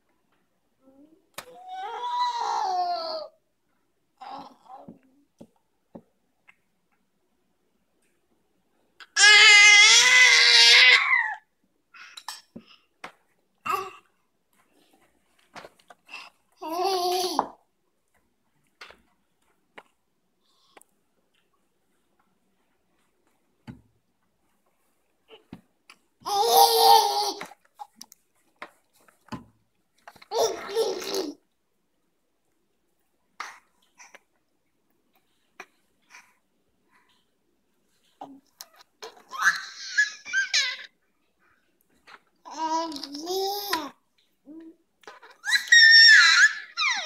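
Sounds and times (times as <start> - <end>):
baby squealing: 39.3 - 40.9, 45.3 - 47.0.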